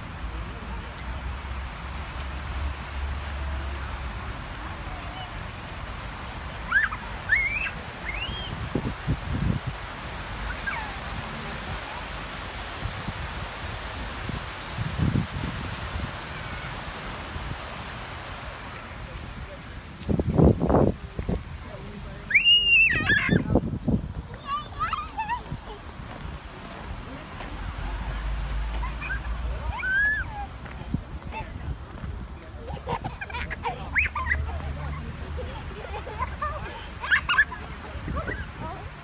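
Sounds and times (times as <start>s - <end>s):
wind rumbling on microphone: 7.8s - 39.0s.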